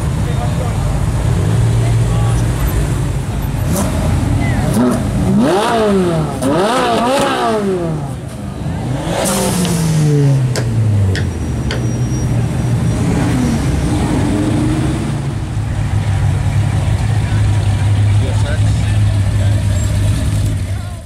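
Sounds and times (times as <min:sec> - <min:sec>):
cars rolling past drone: 0:00.0 - 0:20.9
onlookers talking: 0:00.0 - 0:21.0
sports car engine pulling away: 0:01.0 - 0:20.7.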